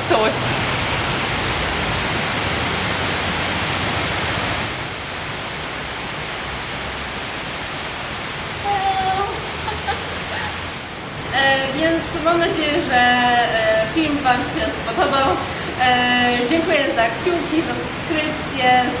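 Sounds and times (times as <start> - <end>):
steady rushing outdoor noise: 0.0 - 19.0.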